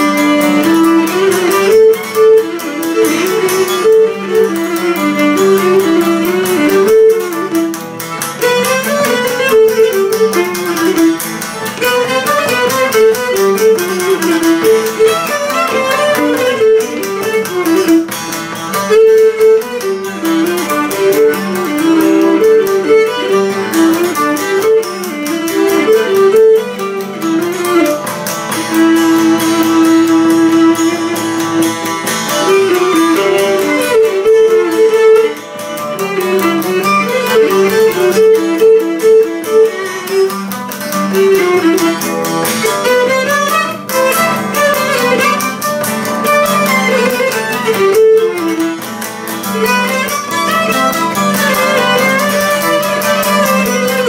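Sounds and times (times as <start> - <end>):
bowed lyra melody: 0.0 - 54.0
lute strumming chords: 0.0 - 54.0.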